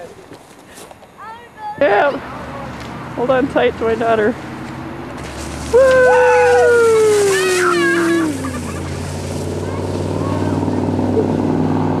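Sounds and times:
low engine-like hum: 0:01.8 - 0:12.0.

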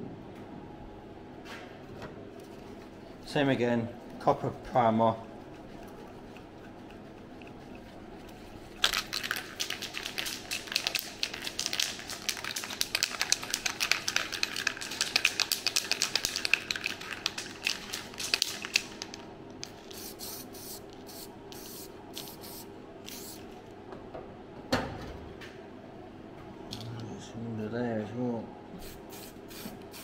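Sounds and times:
aerosol can mixing ball rattling: 0:08.7 - 0:19.2
aerosol spray hissing: 0:20.0 - 0:23.4, 0:28.8 - 0:30.0.

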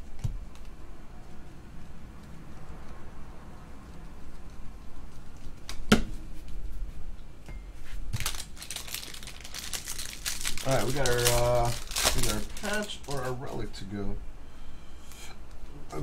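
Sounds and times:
foil wrappers crinkling: 0:08.0 - 0:13.8
foil wrapper tearing: 0:08.1 - 0:13.6.

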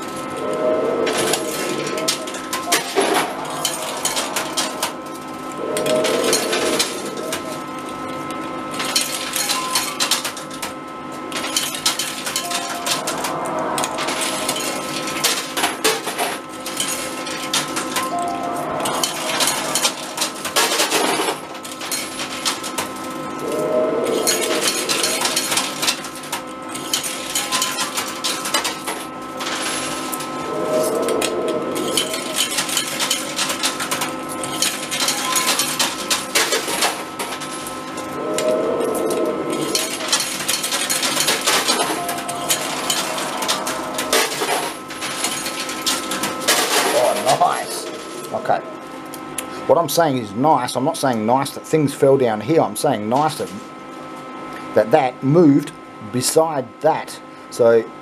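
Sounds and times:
machine hum and tones: 0:00.0 - 0:50.4
coins clinking and clattering: 0:18.9 - 0:22.9, 0:24.2 - 0:30.1, 0:31.8 - 0:37.7, 0:39.6 - 0:47.6.

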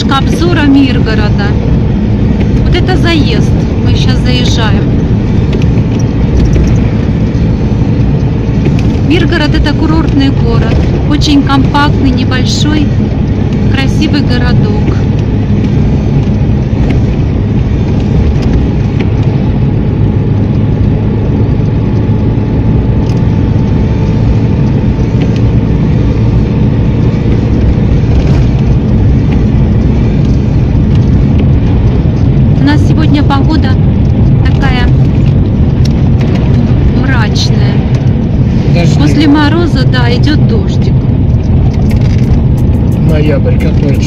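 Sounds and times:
car driving on wet road: 0:00.0 - 0:44.0
person speaking: 0:38.7 - 0:40.8.

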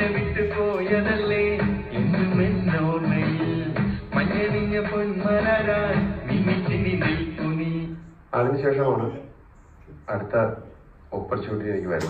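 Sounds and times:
film song from television: 0:00.0 - 0:08.4.

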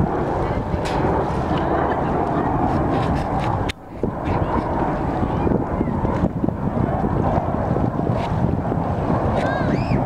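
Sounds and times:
jet aircraft noise: 0:00.0 - 0:10.0
wind buffeting microphone: 0:00.0 - 0:10.0.

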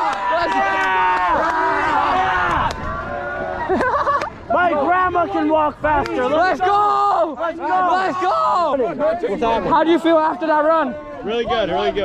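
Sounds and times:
young people shouting and cheering: 0:00.0 - 0:12.0.

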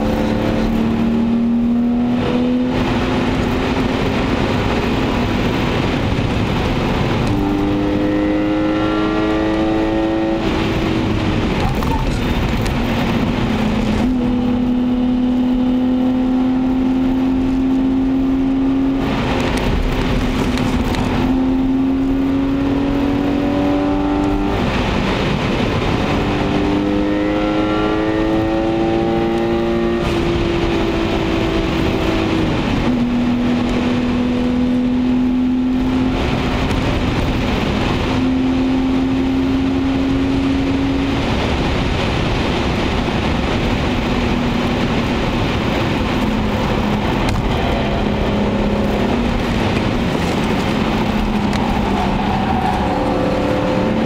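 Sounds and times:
car engine revving: 0:00.0 - 0:54.0
tyre and road noise: 0:00.0 - 0:54.0.

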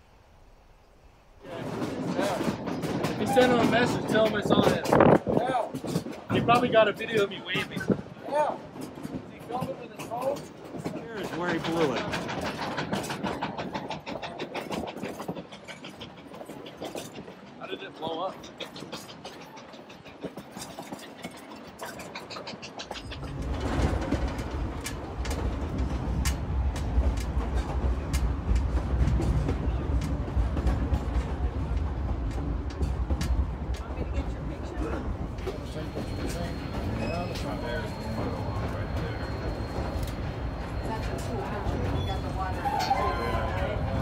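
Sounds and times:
train rumbling: 0:00.0 - 0:44.0
train wheels clicking: 0:01.4 - 0:44.0.

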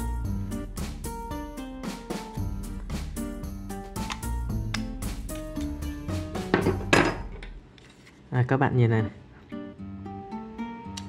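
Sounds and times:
background music with steady beat: 0:00.0 - 0:07.3.

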